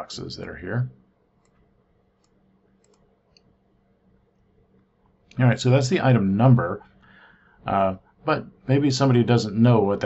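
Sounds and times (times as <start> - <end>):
faint room hum: 0.0 - 10.0
computer mouse clicks: 1.4 - 3.5.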